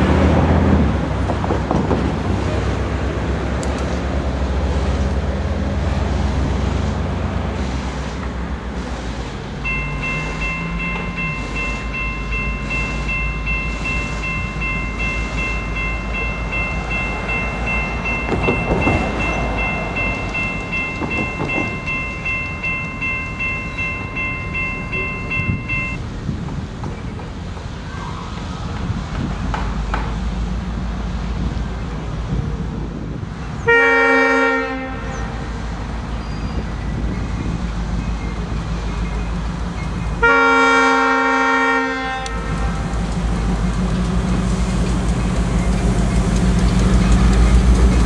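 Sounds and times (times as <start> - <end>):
diesel locomotive engine rumbling: 0.0 - 48.0
steady high-pitched tone: 9.6 - 26.0.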